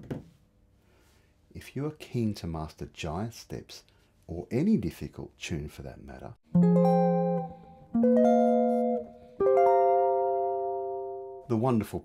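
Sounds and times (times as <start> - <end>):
electric guitar chords: 6.5 - 11.5.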